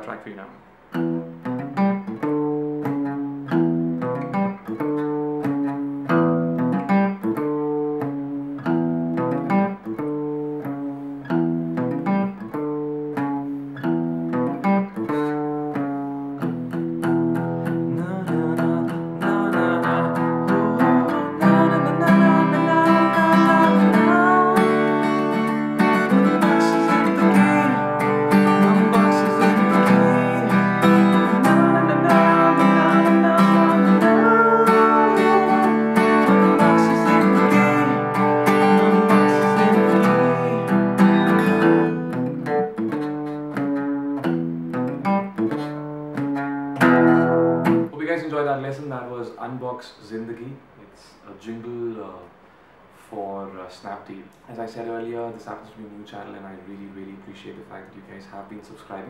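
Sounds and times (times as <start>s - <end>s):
acoustic guitar playing: 0.0s - 48.2s.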